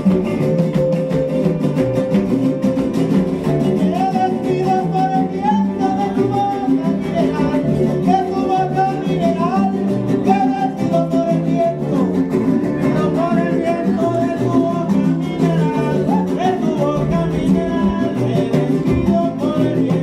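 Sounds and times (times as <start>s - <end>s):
strummed acoustic guitars folk tune: 0.0s - 20.0s.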